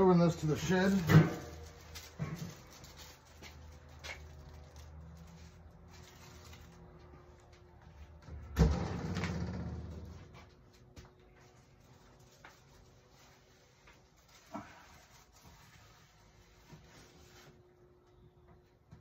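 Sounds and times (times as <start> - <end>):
rumbling noise: 8.6 - 10.4.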